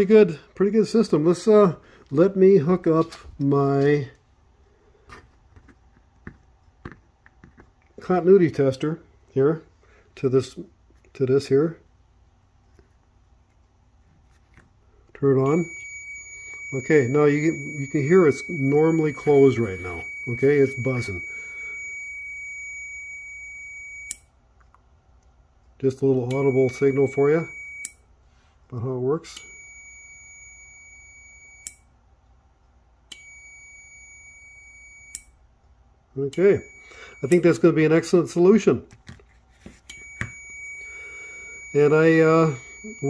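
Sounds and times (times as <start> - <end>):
low room hum: 0.0 - 43.0
continuity tester buzzing: 15.4 - 24.3, 26.3 - 28.0, 36.2 - 37.9, 39.9 - 43.0.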